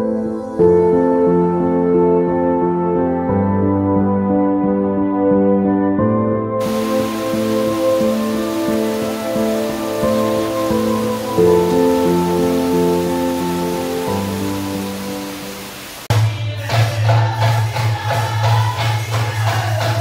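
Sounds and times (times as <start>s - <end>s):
slow melodic music: 0.0s - 16.1s
heavy rain pouring: 6.6s - 16.3s
folk drumming: 16.0s - 20.0s.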